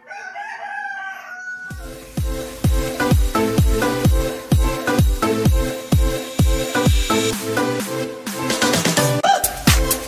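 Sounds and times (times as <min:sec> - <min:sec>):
rooster crowing: 0:00.0 - 0:01.9
electronic dance music: 0:01.7 - 0:10.0.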